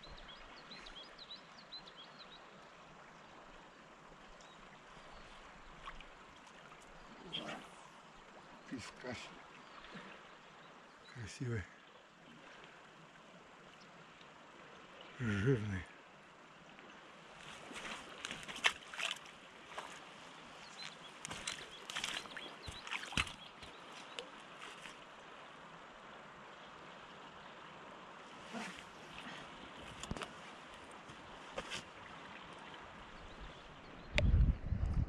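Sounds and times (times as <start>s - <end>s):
river flowing: 0.0s - 34.0s.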